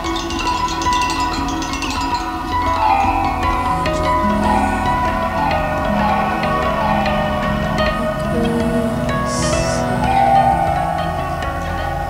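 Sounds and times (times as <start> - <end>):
ringing percussion strikes: 0.0 - 12.0
violin bowing held notes: 0.0 - 12.0.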